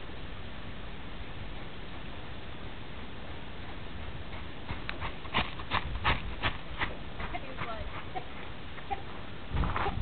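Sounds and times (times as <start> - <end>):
horse hooves striking ground: 1.5 - 10.0.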